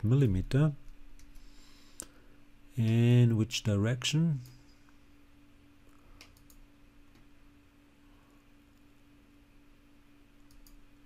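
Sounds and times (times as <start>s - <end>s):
steady low hum: 0.0s - 11.0s
computer mouse clicks: 6.2s - 7.3s, 10.4s - 10.8s.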